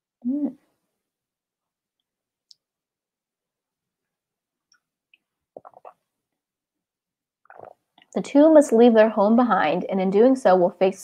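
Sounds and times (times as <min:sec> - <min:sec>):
soft throat noise: 0:04.7 - 0:06.2, 0:07.4 - 0:08.1.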